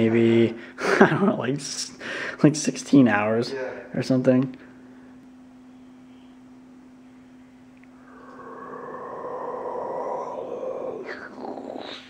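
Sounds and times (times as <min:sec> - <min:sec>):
steady low hum: 0:00.0 - 0:12.0
dog whining groan: 0:08.1 - 0:12.0.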